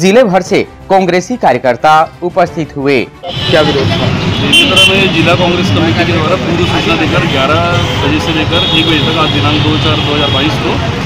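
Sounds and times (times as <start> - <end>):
road traffic noise: 1.9 - 11.0.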